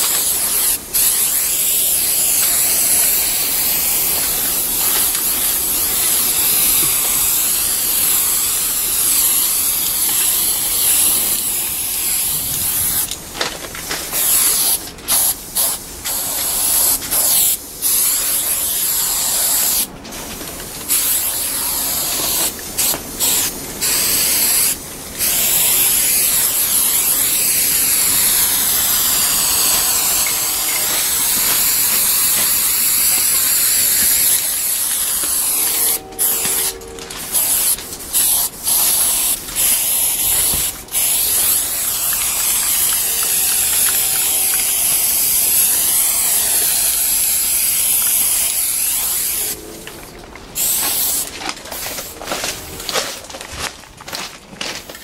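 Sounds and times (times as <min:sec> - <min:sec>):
spray paint can hissing: 0:00.0 - 0:19.9, 0:20.7 - 0:49.6, 0:50.6 - 0:52.4.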